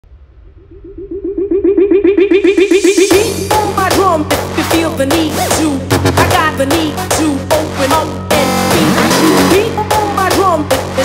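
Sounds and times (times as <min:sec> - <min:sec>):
pulsing electronic synth: 0:00.1 - 0:05.4.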